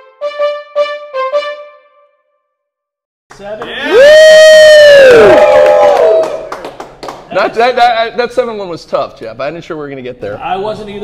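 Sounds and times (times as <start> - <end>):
men cheering woo: 3.6 - 6.6.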